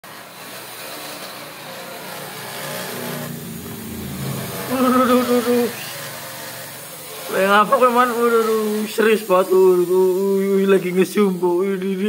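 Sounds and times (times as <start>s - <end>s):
wide hiss: 0.2s - 12.0s
engine running steadily: 2.1s - 7.3s.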